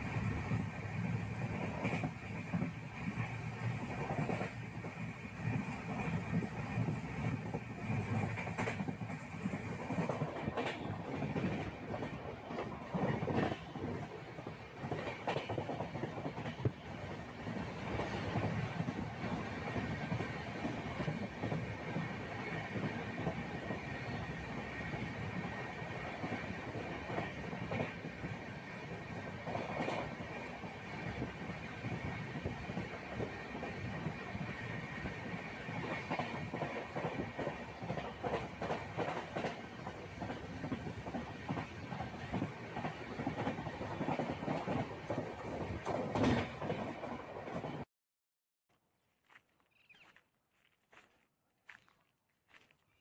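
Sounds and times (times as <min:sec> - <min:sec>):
train rumble: 0:00.0 - 0:47.9
wheels clacking over rail joints: 0:00.2 - 0:47.8.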